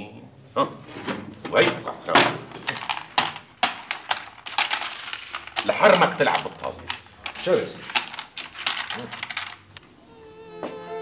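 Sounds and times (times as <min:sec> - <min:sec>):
game pieces clicking on wooden board: 0:02.5 - 0:09.8.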